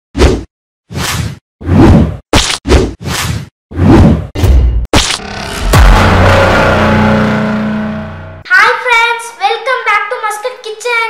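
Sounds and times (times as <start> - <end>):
whooshes with hits: 3.1 - 8.4.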